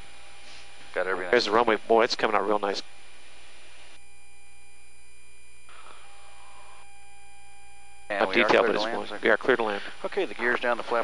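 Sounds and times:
electrical hum: 0:00.0 - 0:11.0
faint constant tones: 0:00.0 - 0:11.0.

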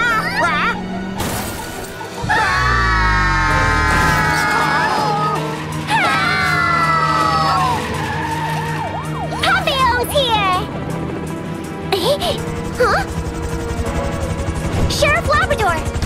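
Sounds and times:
background music: 0:00.0 - 0:16.0
cartoon car crash: 0:01.2 - 0:02.1, 0:03.5 - 0:04.7.

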